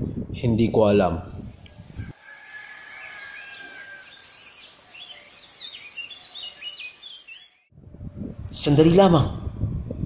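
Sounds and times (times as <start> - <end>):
small birds chirping: 1.5 - 7.7.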